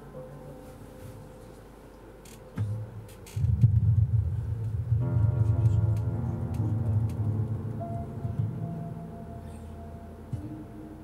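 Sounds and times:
upright piano: 2.8 - 11.0.

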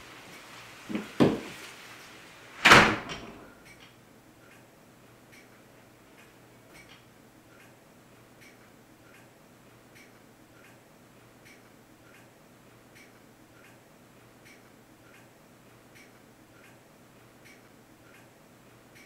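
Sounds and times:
wooden door shutting: 0.9 - 1.5, 2.6 - 3.5.

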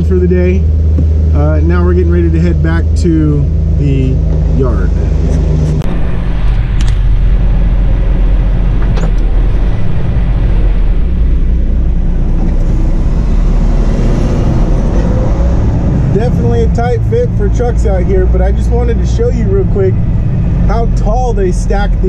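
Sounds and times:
truck diesel engine running: 0.0 - 22.0.

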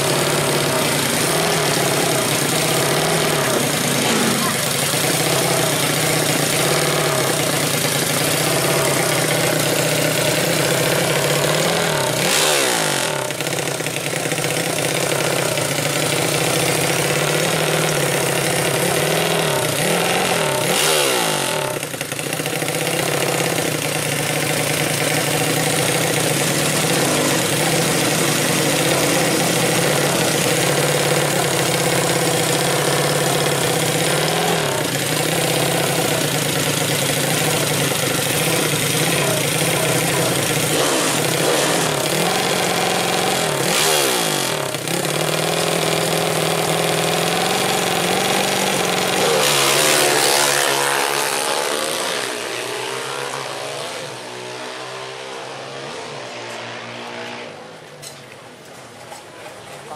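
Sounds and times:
motorcycle engine idling and revving: 0.0 - 59.9.

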